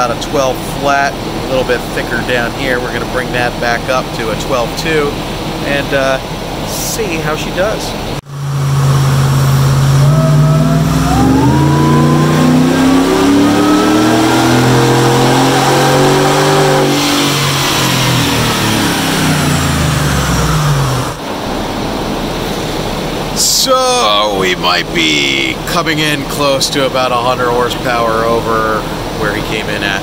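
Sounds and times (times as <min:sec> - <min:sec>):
engine revving on dyno: 0:00.0 - 0:30.0
supercharger whine: 0:00.0 - 0:30.0.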